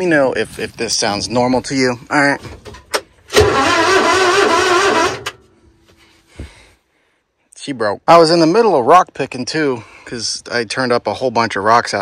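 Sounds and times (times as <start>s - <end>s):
starter motor buzzing groan: 3.3s - 5.4s.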